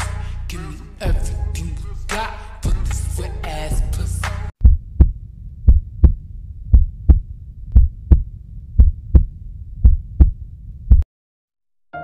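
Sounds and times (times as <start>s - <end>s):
heartbeat thumps: 4.6s - 11.0s
low hum: 4.6s - 11.0s.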